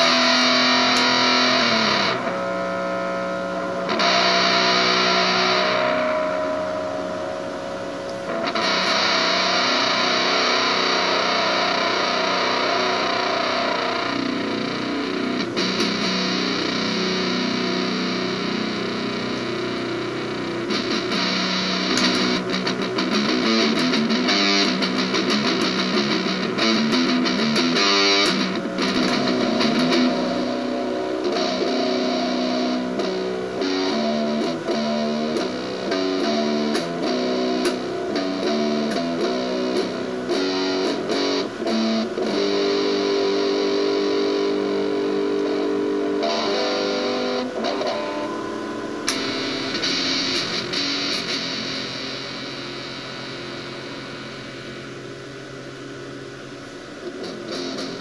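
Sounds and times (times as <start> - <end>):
distorted electric guitar: 0.0 - 58.0.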